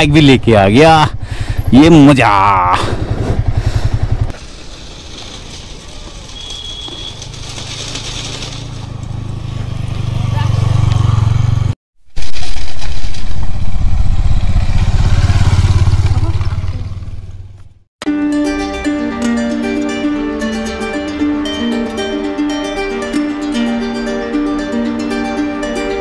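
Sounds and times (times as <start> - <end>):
motorcycle engine running slowly: 1.0 - 11.8, 13.2 - 17.8.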